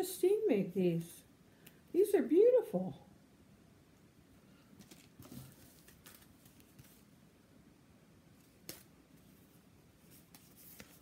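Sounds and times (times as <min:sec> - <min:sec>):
paper cards rustling: 0:04.8 - 0:07.1, 0:08.4 - 0:11.0.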